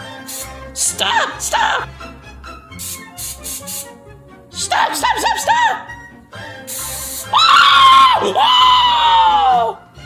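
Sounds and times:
background music with steady beat: 0.0 - 10.0
cooking spray hissing: 0.2 - 0.7, 2.7 - 4.0, 6.7 - 7.4.

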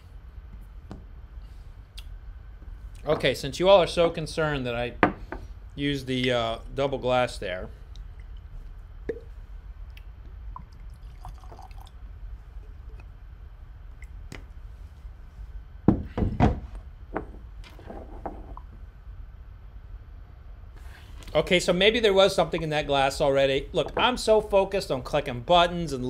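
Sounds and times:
liquid pouring into a glass: 10.6 - 13.1
knocks: 15.9 - 17.4.

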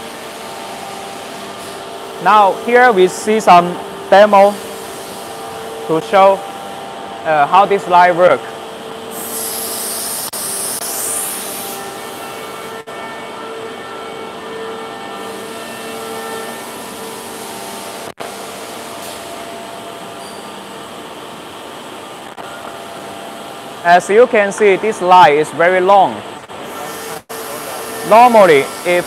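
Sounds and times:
machine hum: 0.0 - 29.0.

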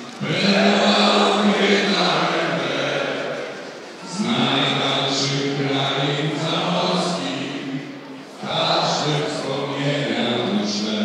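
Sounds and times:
man singing over loudspeakers: 0.0 - 11.0.

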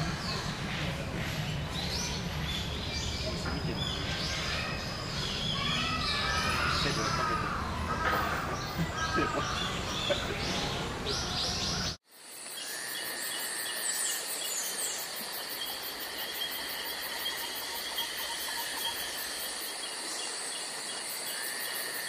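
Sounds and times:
insect chirring: 12.1 - 22.0.

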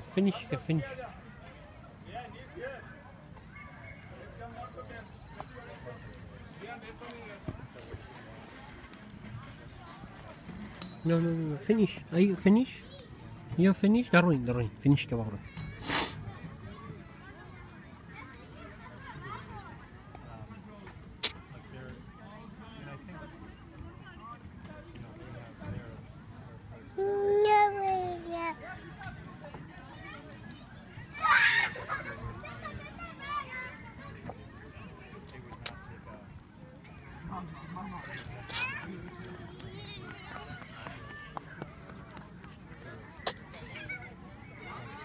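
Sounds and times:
faint distant voices: 0.0 - 45.0
short sharp hissing burst: 15.8 - 16.2.

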